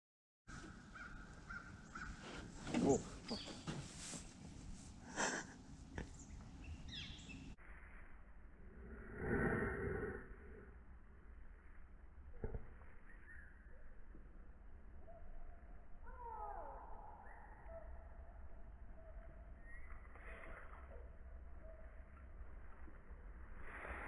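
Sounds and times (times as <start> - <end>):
distant bird calling: 0.5 - 4.2, 5.2 - 7.6.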